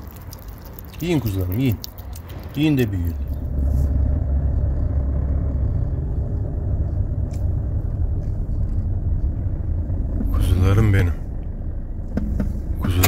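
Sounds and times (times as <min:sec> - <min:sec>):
road noise: 0:00.0 - 0:13.0
vehicle engine rumble: 0:00.0 - 0:13.0.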